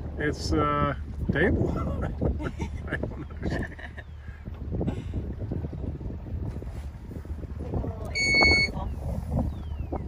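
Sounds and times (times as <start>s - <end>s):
outboard motor rumble: 0.0s - 10.0s
wind on microphone: 0.0s - 10.0s
loud electronic beep: 8.2s - 8.8s.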